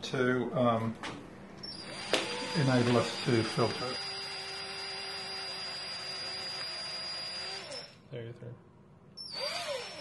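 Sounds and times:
cordless drill boring through cork: 1.7s - 8.0s, 9.2s - 10.0s.

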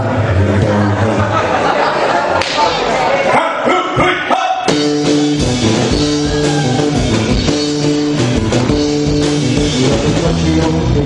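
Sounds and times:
rock and roll band playing: 3.7s - 11.0s
electric guitar: 4.7s - 11.0s.

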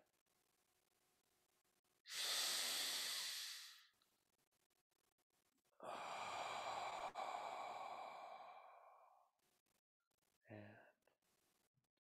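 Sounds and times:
man's deep exhale: 2.1s - 3.8s.

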